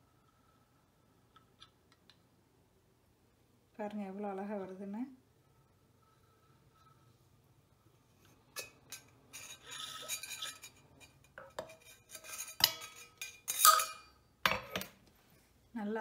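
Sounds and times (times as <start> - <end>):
metal pipe clinking on plate: 11.3 - 14.9.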